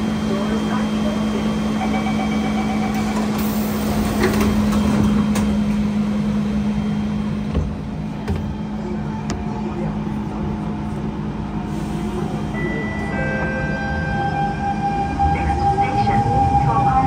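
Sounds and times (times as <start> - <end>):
train equipment humming: 0.0 - 17.0
passengers bustling: 0.1 - 17.0
short thumps: 7.4 - 8.7.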